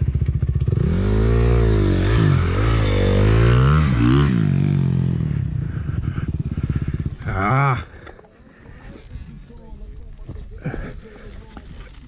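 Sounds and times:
dirt bike engine rumble: 0:00.0 - 0:12.0.

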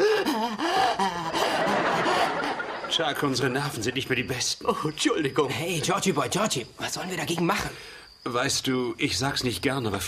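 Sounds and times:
breathy gasping voices: 0:00.0 - 0:02.6, 0:07.6 - 0:08.2
people laughing: 0:00.0 - 0:03.9.

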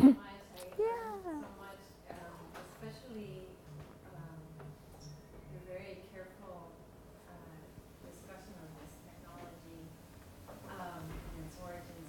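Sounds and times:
faint indistinct talk: 0:00.0 - 0:01.8.

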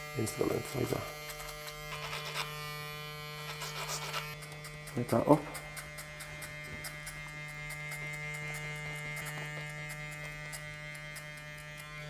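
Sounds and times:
clippers ticking through hair: 0:00.0 - 0:12.0
electric hair clippers buzzing: 0:00.0 - 0:12.0.

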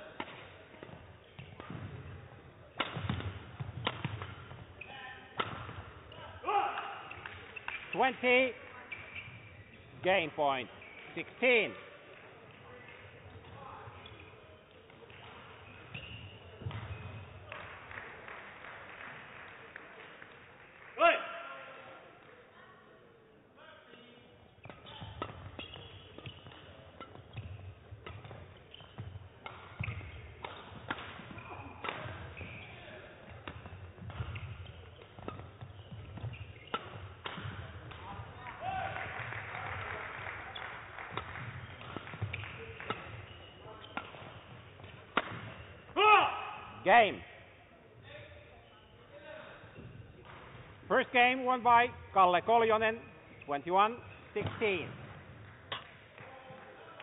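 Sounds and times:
rackets striking shuttlecock: 0:00.1 - 0:04.7, 0:05.3 - 0:06.0, 0:13.2 - 0:17.3, 0:24.6 - 0:38.7, 0:40.8 - 0:46.8, 0:53.0 - 0:56.3.

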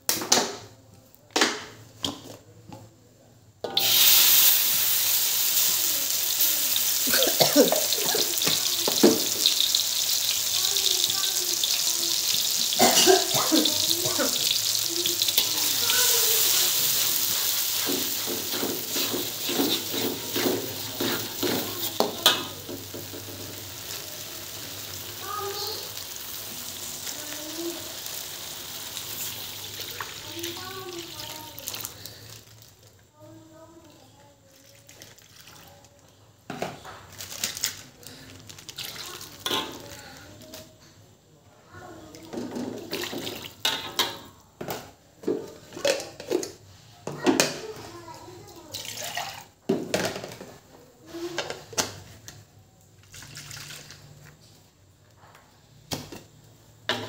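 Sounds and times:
spice paste sizzling in oil: 0:03.7 - 0:32.7
fork scraping metal wok: 0:15.2 - 0:22.5.

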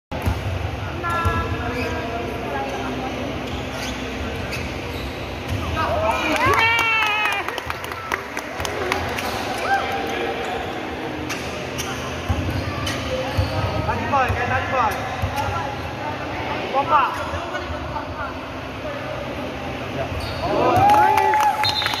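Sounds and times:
sneakers squeaking on court: 0:01.1 - 0:05.9, 0:10.4 - 0:15.8, 0:20.1 - 0:20.7
basketball bouncing in gym: 0:11.3 - 0:15.7.

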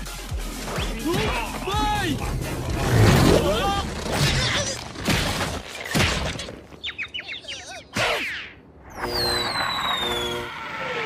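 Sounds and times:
cartoon chirping tweets: 0:06.8 - 0:10.5
high falling whistle: 0:08.9 - 0:11.0.

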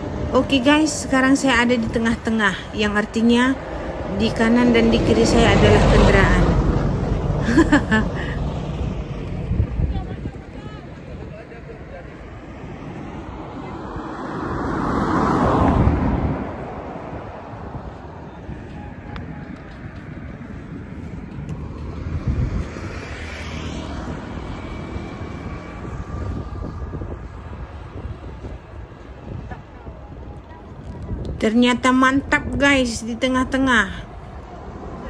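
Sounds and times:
cars passing close by: 0:00.0 - 0:35.0
steady traffic rumble: 0:00.0 - 0:35.0.

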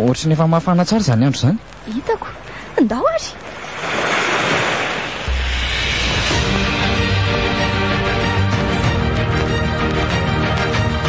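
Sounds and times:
rushing noise like surf: 0:03.4 - 0:09.5.

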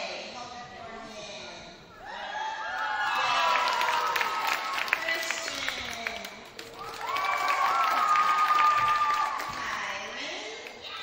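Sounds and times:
crowd applauding and cheering: 0:02.6 - 0:09.9.

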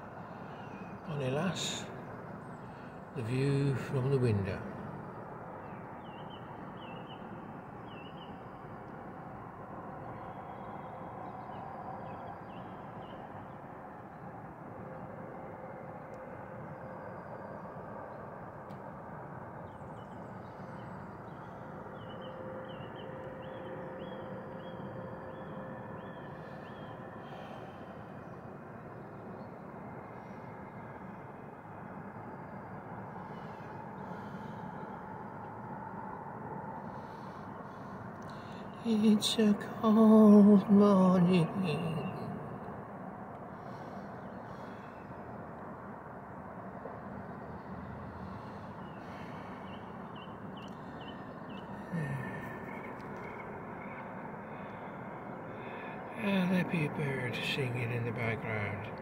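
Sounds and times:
faint hum: 0:00.0 - 0:59.0.

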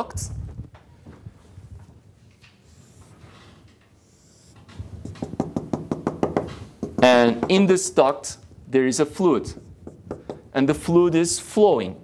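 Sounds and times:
marker tapping on whiteboard: 0:05.0 - 0:07.7, 0:09.6 - 0:10.5.

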